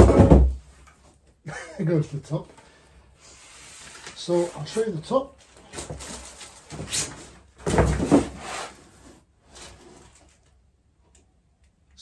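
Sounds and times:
table top scraping cardboard: 8.0s - 9.2s.

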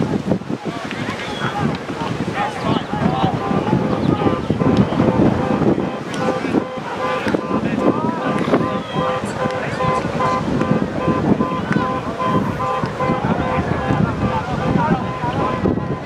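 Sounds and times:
people calling and shouting: 0.0s - 16.0s
wind buffeting microphone: 0.0s - 16.0s.

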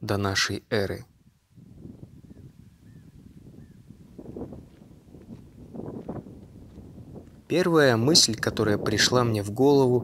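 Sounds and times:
wind blowing across microphone: 0.0s - 10.0s.

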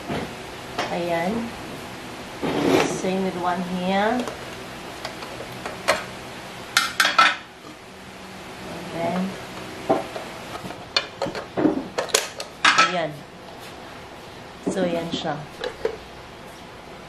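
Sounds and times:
cooking plates clicking and clattering: 6.8s - 7.5s.

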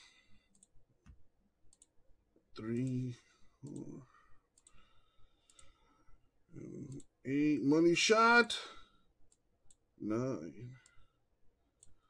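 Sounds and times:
computer mouse clicks: 0.4s - 2.0s, 2.6s - 3.0s, 3.6s - 5.8s, 6.8s - 7.1s, 11.8s - 12.0s.

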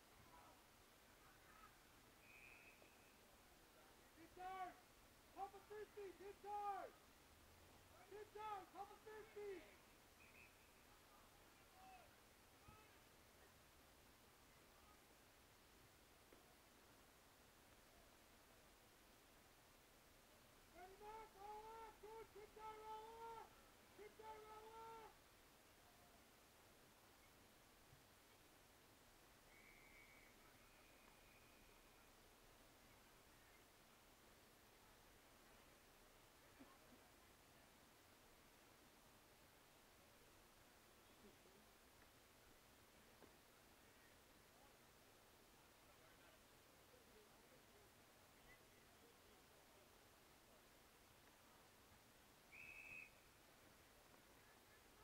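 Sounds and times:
faint whistle: 1.5s - 3.4s, 10.1s - 11.9s, 29.4s - 32.2s, 52.5s - 53.3s.

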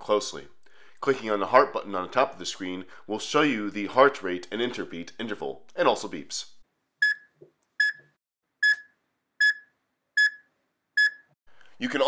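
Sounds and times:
heart-rate monitor beeps: 7.0s - 11.3s.

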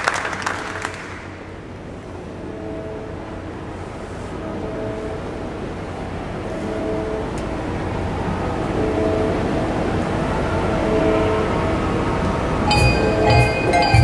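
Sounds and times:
handbell ensemble chords: 12.6s - 14.0s
ringing handbell strikes: 12.7s - 14.0s.

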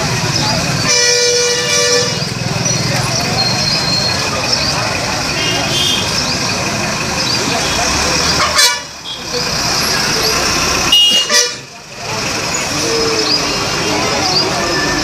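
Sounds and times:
crowd chatter: 0.0s - 15.0s
road traffic: 0.0s - 15.0s
vehicle horns honking: 0.8s - 2.5s, 5.3s - 6.2s, 7.6s - 9.4s, 10.9s - 11.7s.

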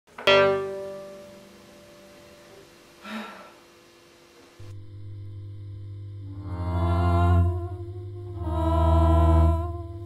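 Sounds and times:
layered wordless humming voice: 4.6s - 10.0s.

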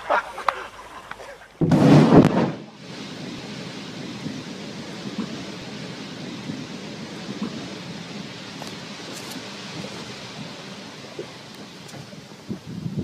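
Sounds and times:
wind and sea noise on microphone: 0.0s - 13.0s
distant underwater explosion boom: 1.6s - 12.7s.

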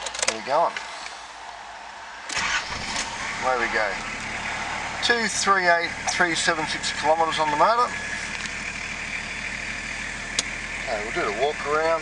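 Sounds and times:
diesel engine idling: 2.3s - 12.0s.

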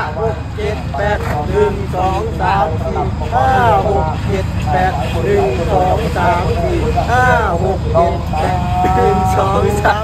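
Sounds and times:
steady low rumble: 0.0s - 10.0s
man calling out: 5.0s - 10.0s.

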